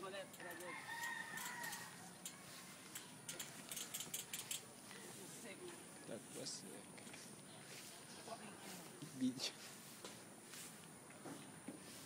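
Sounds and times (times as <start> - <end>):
rooster crowing: 0.5 - 2.6.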